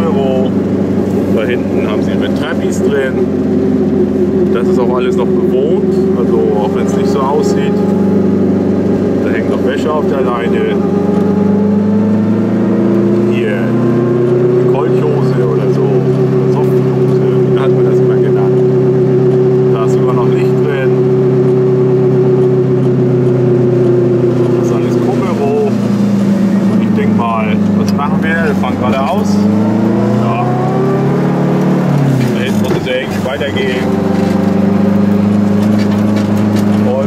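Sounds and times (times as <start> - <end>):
two-stroke car engine: 0.0 - 37.0.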